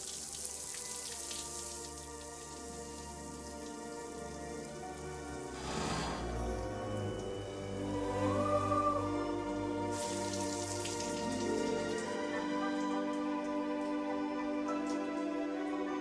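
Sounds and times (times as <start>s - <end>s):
soft film music: 0.0s - 16.0s
shower spray hissing: 5.0s - 7.2s, 9.8s - 11.8s.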